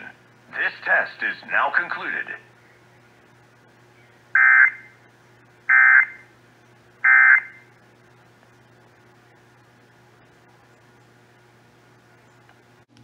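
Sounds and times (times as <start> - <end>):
faint steady hum: 0.0 - 13.0
screechy digital data bursts: 4.4 - 5.0, 5.7 - 6.2, 7.0 - 7.7.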